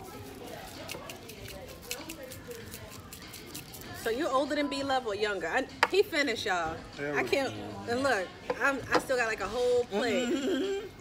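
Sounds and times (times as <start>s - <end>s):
salt shaker being shaken: 0.0s - 4.3s.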